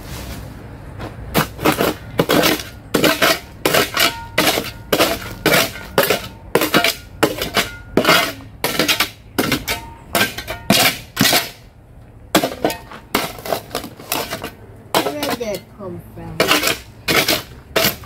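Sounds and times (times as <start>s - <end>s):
shovel clinking into stony soil: 1.4s - 11.6s, 16.4s - 18.0s.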